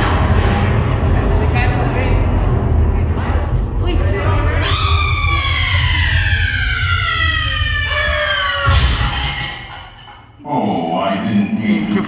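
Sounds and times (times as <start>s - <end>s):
sudden crash: 0.0s - 10.4s
steady low rumble: 0.0s - 10.7s
woman screaming over speakers: 4.6s - 9.8s.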